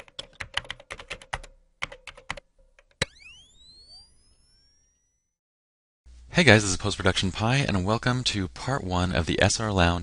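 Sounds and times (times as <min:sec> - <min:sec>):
keyboard typing clicks: 0:00.0 - 0:03.1
tones sweeping upward: 0:03.0 - 0:05.4.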